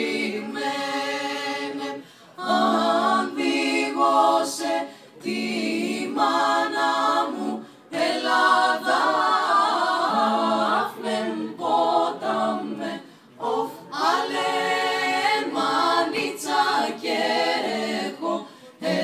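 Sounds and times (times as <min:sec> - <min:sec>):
women singing in harmony: 0:00.0 - 0:19.0.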